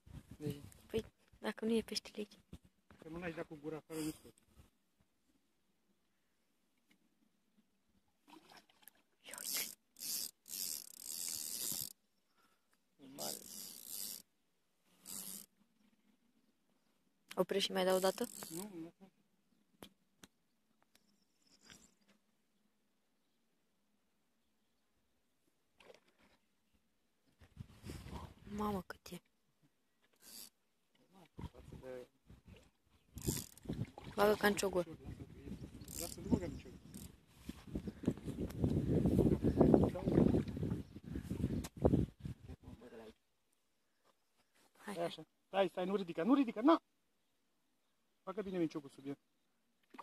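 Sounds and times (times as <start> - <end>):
fishing reel buzzing: 9.4 - 12.0, 13.2 - 14.3, 14.9 - 15.6, 17.8 - 18.8, 30.2 - 30.6, 33.1 - 34.2, 35.6 - 37.2.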